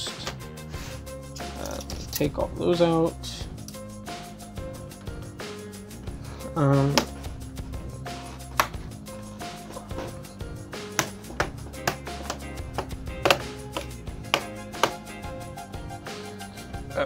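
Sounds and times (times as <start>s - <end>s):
faint background music: 0.0s - 17.0s
laptop parts clicking and tapping: 11.0s - 15.0s.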